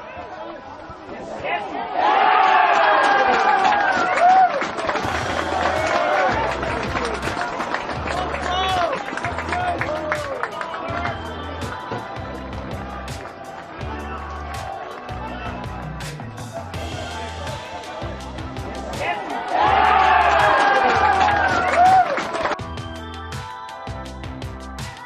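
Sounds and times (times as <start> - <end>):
crowd shouting and cheering: 0.0 - 25.0
music with pulsing beat: 19.7 - 25.0.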